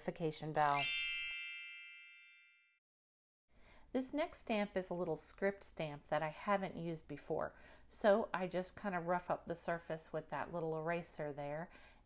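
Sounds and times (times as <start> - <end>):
notification bell chime: 0.6 - 2.7.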